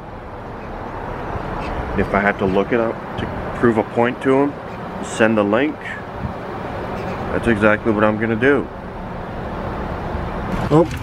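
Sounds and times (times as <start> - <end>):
outdoor rumble and hiss: 0.0 - 11.0
man speaking: 1.9 - 6.1, 7.3 - 8.8.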